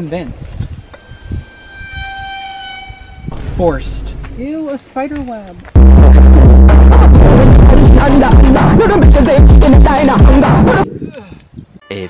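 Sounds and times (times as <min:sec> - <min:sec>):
high-pitched steady tone: 0:00.8 - 0:04.1
low thump: 0:03.3 - 0:04.4.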